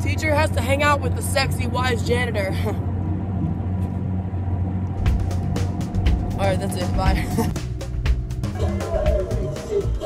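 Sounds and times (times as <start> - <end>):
constant hum: 0.0 - 10.0
low rumble: 0.0 - 10.0.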